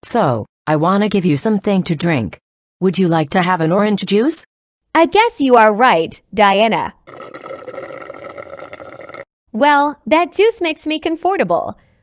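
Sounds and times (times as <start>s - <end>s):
cartoon liquid slurping: 7.1s - 9.3s.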